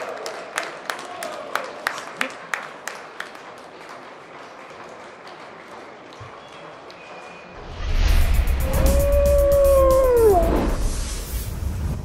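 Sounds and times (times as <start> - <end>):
wolf howl: 8.6 - 10.8.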